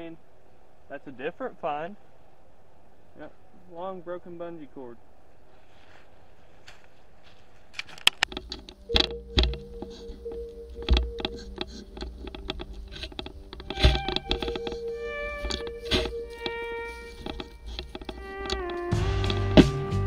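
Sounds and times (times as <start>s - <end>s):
low background hiss: 0.0s - 20.0s
music with drum beat and synth: 18.2s - 20.0s.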